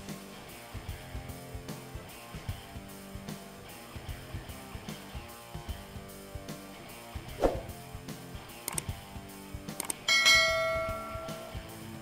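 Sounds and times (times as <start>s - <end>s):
quiet background music: 0.0s - 12.0s
bell ding: 10.1s - 11.6s.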